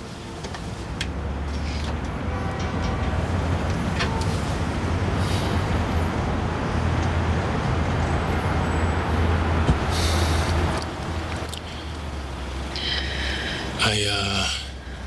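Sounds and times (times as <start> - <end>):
low rumble of passing vehicles: 0.0 - 15.0.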